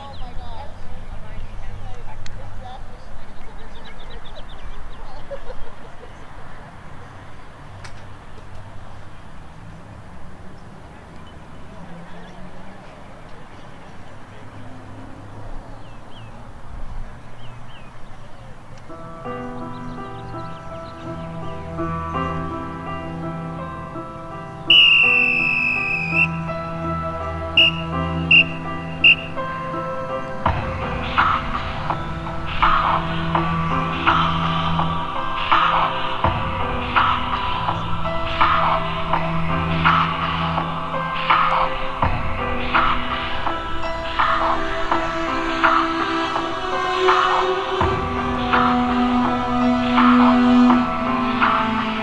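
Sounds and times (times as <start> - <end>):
faint distant voices: 0.0 - 52.0
slow music from loudspeaker: 18.8 - 52.0
small bird trilling: 24.7 - 26.3
whistle blasts: 24.7 - 26.5, 27.5 - 29.5.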